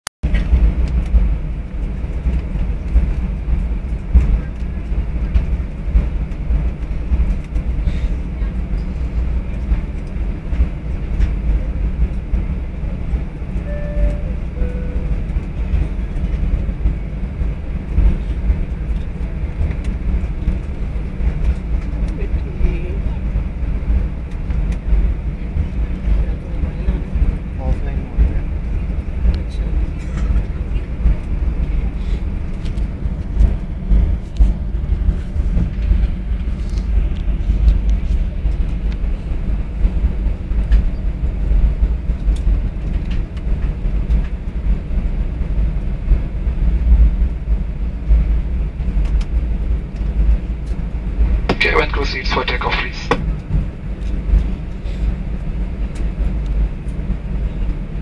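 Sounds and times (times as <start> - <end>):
airliner cabin engine rumble: 0.2 - 58.0.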